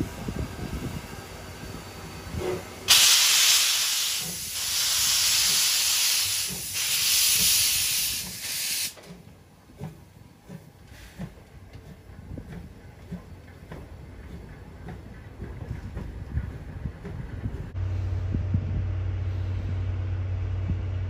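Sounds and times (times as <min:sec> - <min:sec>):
steam locomotive pulling away: 0:00.0 - 0:09.0
loud hiss of steam: 0:02.0 - 0:09.0.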